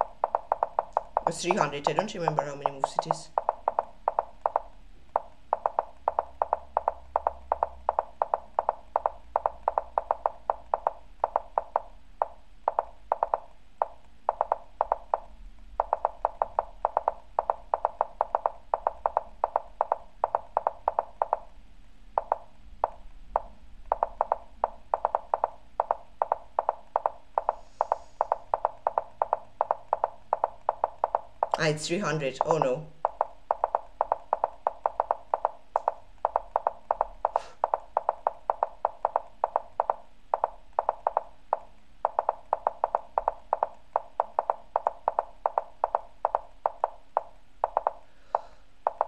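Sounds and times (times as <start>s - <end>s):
rapid wooden clicks: 0.0s - 21.5s, 22.2s - 49.0s.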